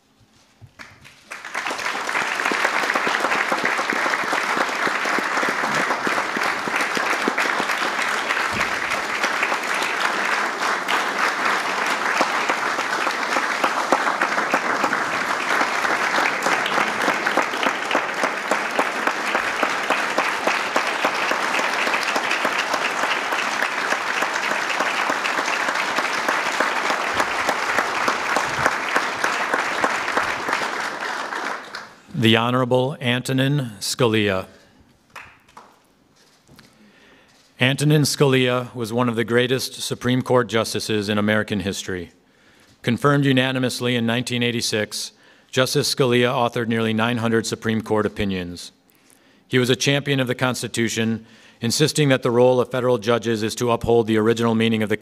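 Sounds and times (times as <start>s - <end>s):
audience applauding: 0.8s - 32.1s, 35.1s - 35.8s.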